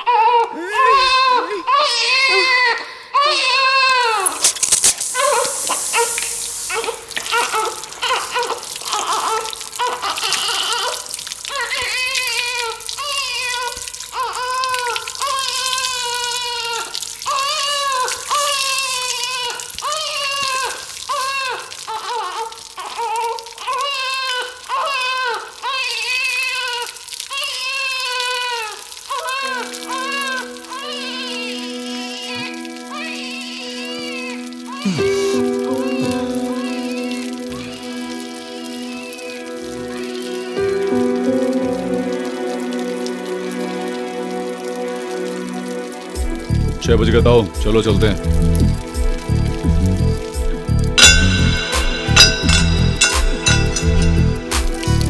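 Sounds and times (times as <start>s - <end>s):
high voice lamenting: 0.5s - 2.6s, 33.0s - 40.7s
water pouring from tap: 3.6s - 55.0s
held music chord: 34.9s - 39.0s, 50.2s - 55.0s.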